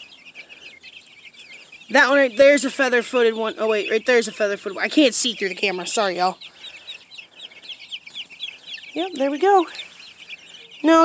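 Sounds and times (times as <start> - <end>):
chicks peeping: 0.0 - 11.0.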